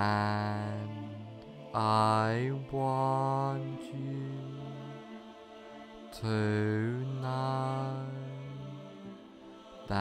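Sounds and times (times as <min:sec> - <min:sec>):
person chanting a drawn-out word: 0:00.0 - 0:10.0
quiet meditation music: 0:00.0 - 0:10.0.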